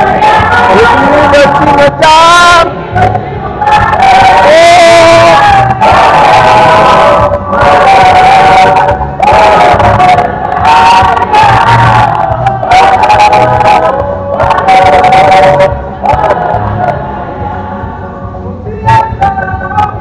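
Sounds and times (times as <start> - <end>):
congregation singing: 0.0 - 20.0.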